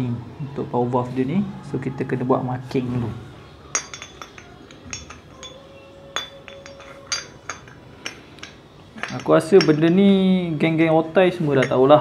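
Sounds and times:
metal engine parts clinking: 0:03.7 - 0:10.3, 0:11.4 - 0:12.0.

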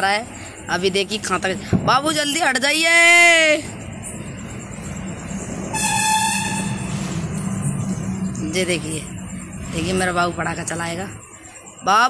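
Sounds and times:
steady low hum: 0:03.6 - 0:11.9
horn steady tone: 0:04.4 - 0:12.0.

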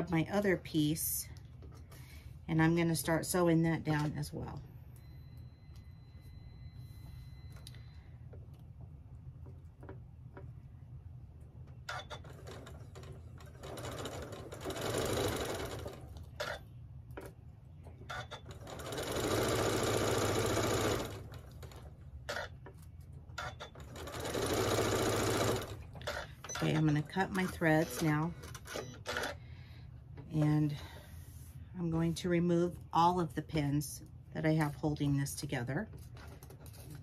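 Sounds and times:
steady low hum: 0:00.0 - 0:37.0
sewing machine stitching: 0:11.9 - 0:16.6, 0:18.1 - 0:22.5, 0:23.4 - 0:29.4.

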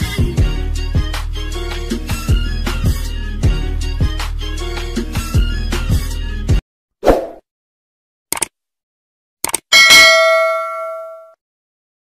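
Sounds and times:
bright bell ding: 0:09.7 - 0:11.4.

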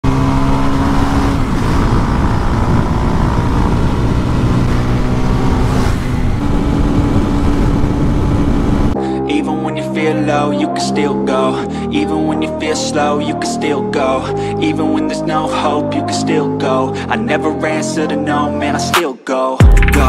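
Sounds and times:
motorcycle engine cruising: 0:00.0 - 0:09.0
music: 0:09.0 - 0:20.0.

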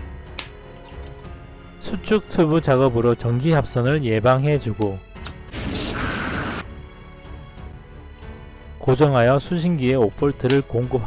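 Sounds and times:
lighter flame hissing: 0:05.5 - 0:06.6.

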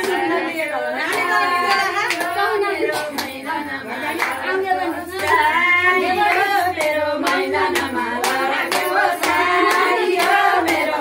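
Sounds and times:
hand clapping: 0:00.0 - 0:00.4, 0:01.0 - 0:03.4, 0:04.2 - 0:04.4, 0:06.2 - 0:11.0
women singing a folk song: 0:00.0 - 0:11.0.

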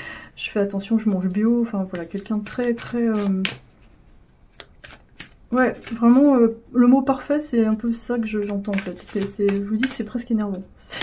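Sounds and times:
person speaking: 0:00.4 - 0:03.7, 0:05.2 - 0:11.0.

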